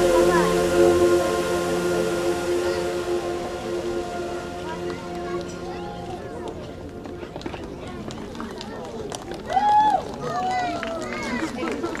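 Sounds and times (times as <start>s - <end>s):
voices of people milling about: 0.0s - 12.0s.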